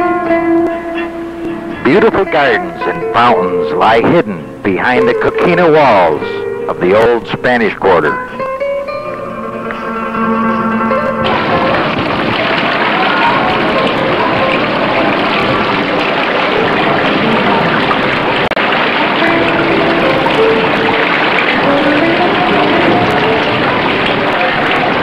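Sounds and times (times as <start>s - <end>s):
fountain water splashing: 0.0s - 25.0s.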